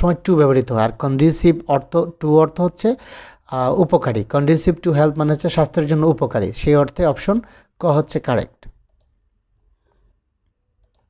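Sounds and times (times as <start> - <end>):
computer mouse clicks: 8.7 - 9.2, 10.4 - 11.0.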